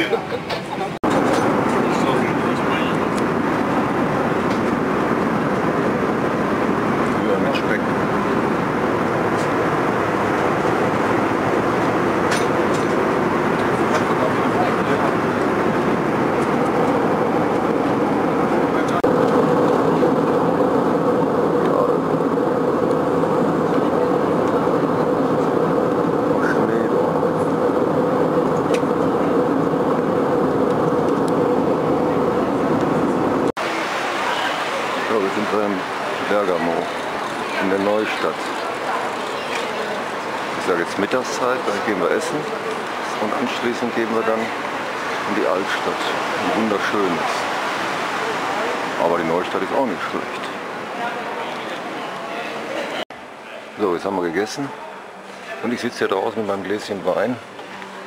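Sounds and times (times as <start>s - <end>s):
airliner cabin engine rush: 0.0s - 58.0s
steady hum: 0.8s - 58.0s.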